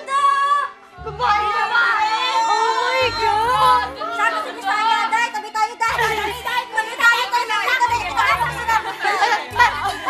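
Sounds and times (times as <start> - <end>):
background music: 0.0 - 10.0
girls shrieking and chattering: 0.0 - 10.0.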